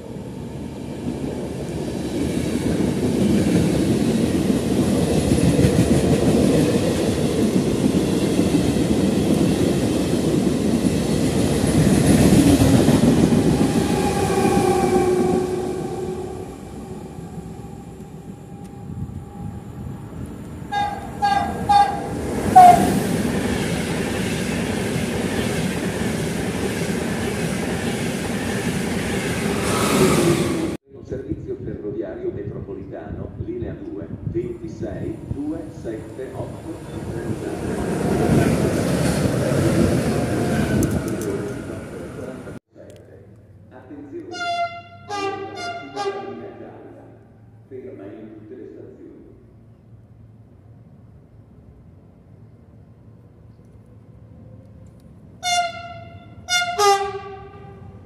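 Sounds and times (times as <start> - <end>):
train passing with wheel clatter: 0.0 - 30.8, 34.6 - 42.6, 49.5 - 58.0
train running noise: 0.0 - 30.8, 34.0 - 42.6
train horn toots: 14.0 - 16.9, 20.7 - 23.0, 44.3 - 46.5, 55.4 - 58.0.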